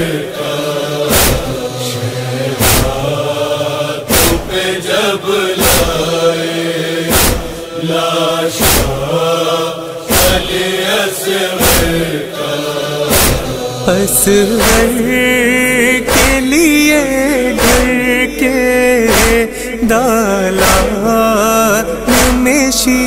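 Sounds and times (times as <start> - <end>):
chorus chanting in unison: 0.0 - 23.0
sharp regular beat: 1.1 - 3.2, 13.1 - 21.2.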